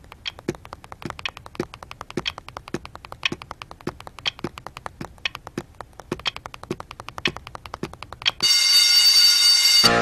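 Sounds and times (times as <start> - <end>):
clock ticking: 0.0 - 9.2
electric school bell ringing: 8.4 - 10.0.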